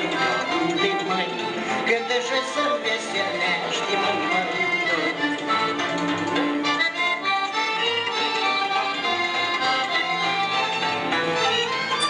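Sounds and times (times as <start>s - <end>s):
violins: 0.0s - 12.0s.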